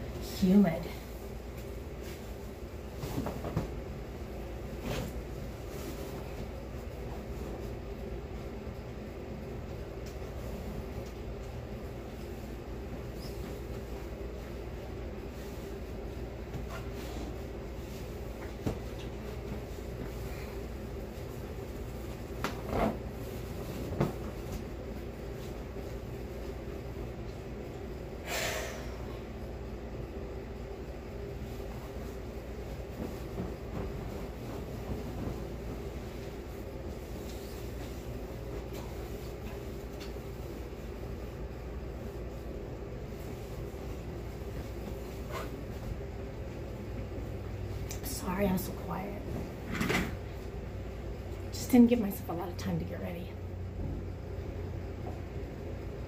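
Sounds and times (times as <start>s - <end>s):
electric fan running: 0.0s - 56.0s
linen swishing: 1.0s - 8.6s, 12.0s - 26.9s, 30.8s - 47.8s.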